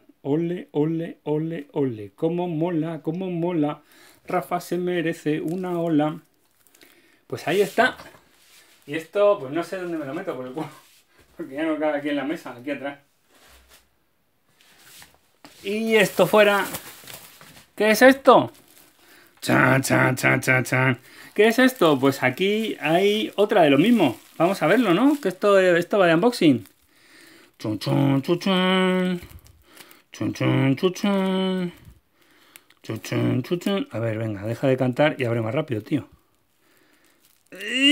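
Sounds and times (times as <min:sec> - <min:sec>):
bubble wrap rustling: 0:03.9 - 0:11.8, 0:14.5 - 0:37.9
man singing wordless tune: 0:30.1 - 0:31.9.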